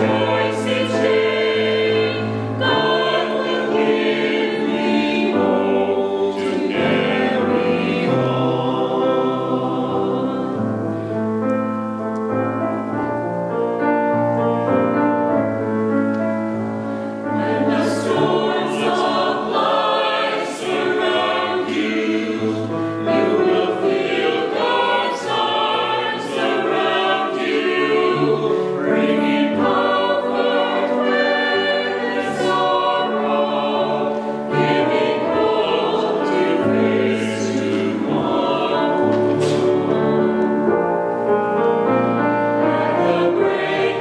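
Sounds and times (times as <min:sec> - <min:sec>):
church choir singing: 0:00.0 - 0:44.0
keyboard accompaniment: 0:00.0 - 0:44.0.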